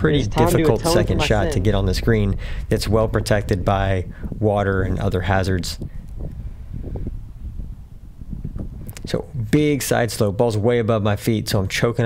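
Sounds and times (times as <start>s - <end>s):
wind buffeting microphone: 0.0s - 10.8s.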